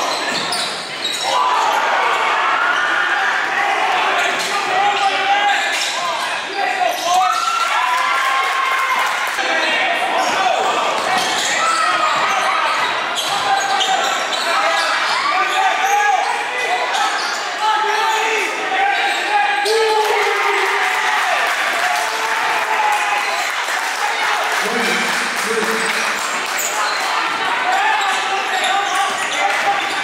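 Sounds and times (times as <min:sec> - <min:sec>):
people talking and shouting: 0:00.0 - 0:30.0.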